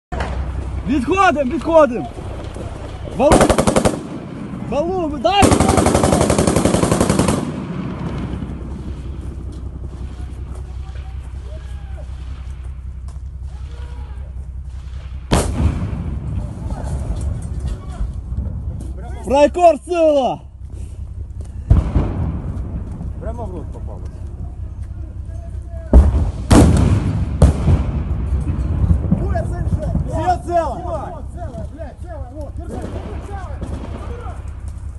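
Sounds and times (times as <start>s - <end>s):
men's voices: 0.2s - 3.9s, 4.6s - 6.4s, 9.7s - 14.6s, 16.3s - 22.0s, 23.0s - 26.3s, 29.0s - 34.8s
scattered faint gunshots: 3.2s - 4.6s, 5.4s - 9.1s
rapid automatic gunfire: 3.2s - 9.2s
loud blast: 3.2s - 17.6s, 21.6s - 23.4s, 25.9s - 30.8s.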